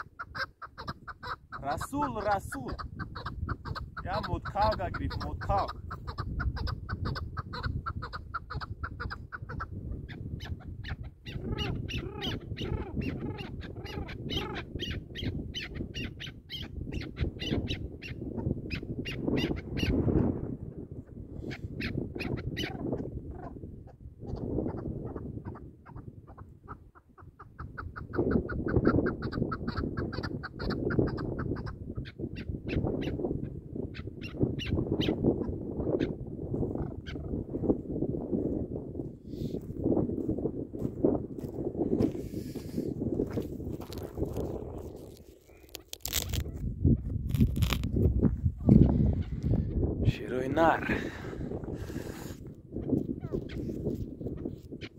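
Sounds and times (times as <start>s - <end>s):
partridge calling: 0.0s - 20.3s, 21.4s - 37.4s.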